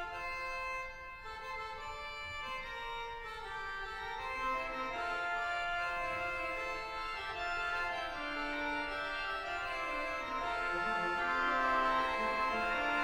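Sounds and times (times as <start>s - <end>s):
pipe organ chords: 0.0s - 13.0s.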